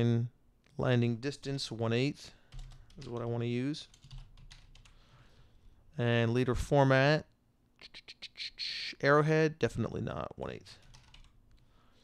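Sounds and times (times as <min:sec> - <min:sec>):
computer keyboard keystrokes: 0:02.5 - 0:03.3, 0:03.9 - 0:05.0, 0:10.8 - 0:11.6.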